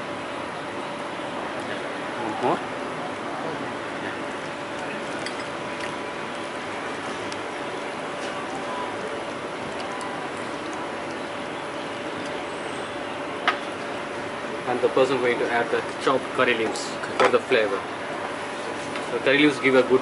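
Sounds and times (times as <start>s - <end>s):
faint hum: 0.0s - 20.0s.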